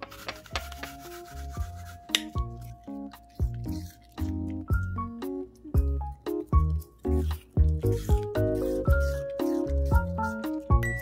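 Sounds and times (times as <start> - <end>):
knife slicing apple: 0.0 - 4.9, 5.8 - 11.0
background music: 0.0 - 11.0.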